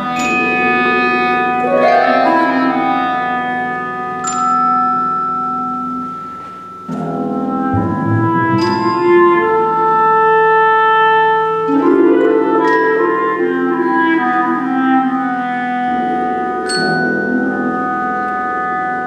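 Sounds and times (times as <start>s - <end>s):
clarinet holding long notes: 0.0s - 4.4s, 7.2s - 19.0s
mallet percussion tones: 0.0s - 10.2s, 11.7s - 14.0s
harp: 0.0s - 19.0s.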